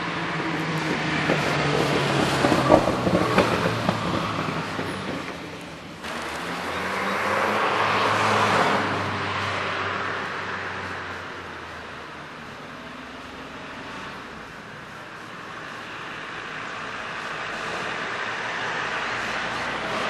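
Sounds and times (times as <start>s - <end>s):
vehicle passing: 0.0s - 20.0s.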